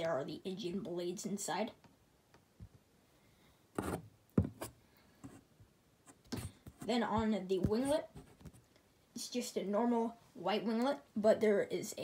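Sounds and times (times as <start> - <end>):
knocks and rubbing of handled model: 3.8 - 5.5, 6.1 - 8.7.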